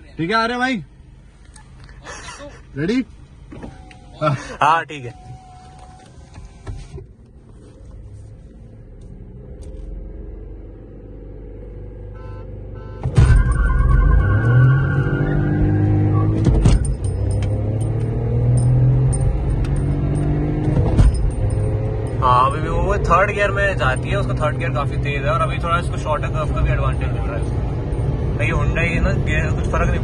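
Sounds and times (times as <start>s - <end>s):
car engine revving: 2.7s - 30.0s.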